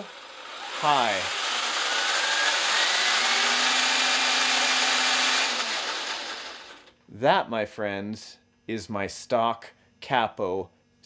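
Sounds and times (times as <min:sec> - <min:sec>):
toy truck gears whirring: 0:00.0 - 0:06.9.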